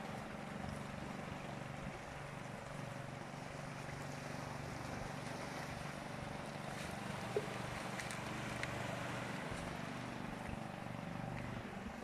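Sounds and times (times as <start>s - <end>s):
distant boat engine hum: 0.0s - 12.0s
light wind: 0.0s - 12.0s
water lapping on rocky shore: 0.0s - 12.0s.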